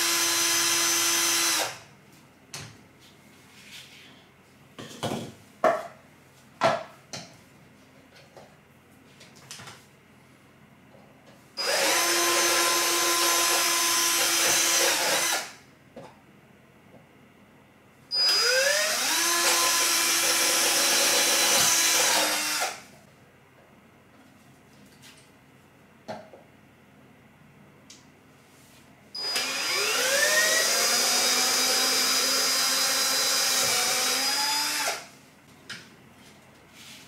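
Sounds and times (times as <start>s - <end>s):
cordless drill whining: 0.0s - 1.8s, 11.6s - 15.5s, 18.1s - 22.8s, 29.2s - 35.0s.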